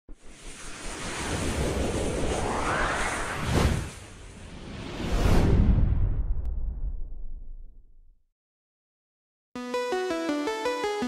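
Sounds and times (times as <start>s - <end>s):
whoosh over low rumble: 0.1s - 8.1s.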